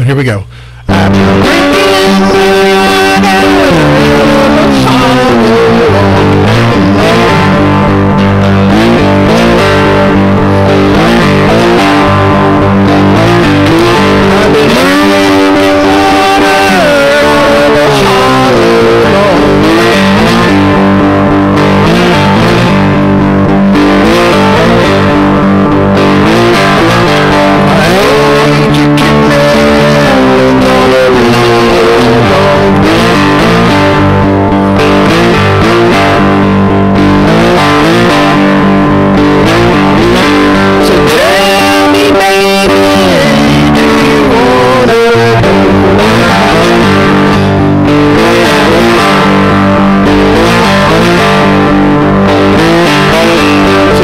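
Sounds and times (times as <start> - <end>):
distorted slide guitar: 0.0 - 54.0.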